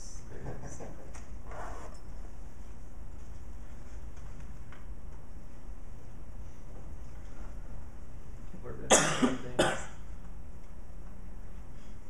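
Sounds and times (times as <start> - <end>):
steady room hum: 0.0 - 12.0
person coughing: 8.9 - 10.0.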